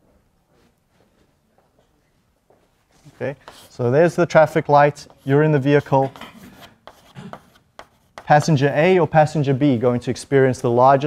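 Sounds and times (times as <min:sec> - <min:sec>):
chalk taps: 0:03.4 - 0:03.9, 0:04.9 - 0:09.2
chalk scraping on blackboard: 0:03.4 - 0:08.9.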